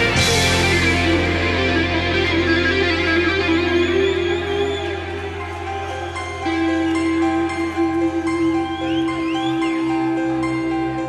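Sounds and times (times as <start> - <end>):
rock guitar: 0.0 - 11.0.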